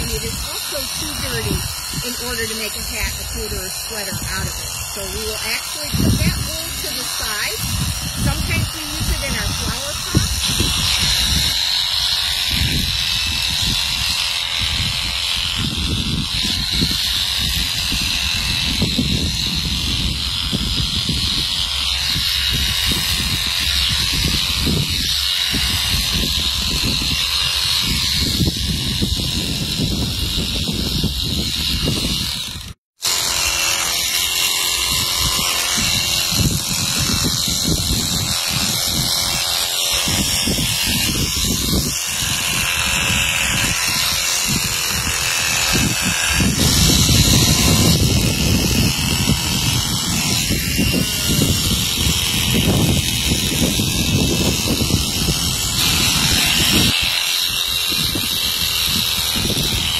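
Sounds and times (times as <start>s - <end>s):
electric shears whining: 0.0s - 59.9s.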